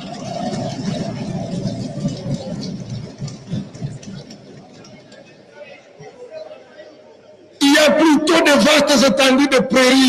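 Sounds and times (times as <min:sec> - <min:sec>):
low murmur of voices: 0:00.0 - 0:10.0.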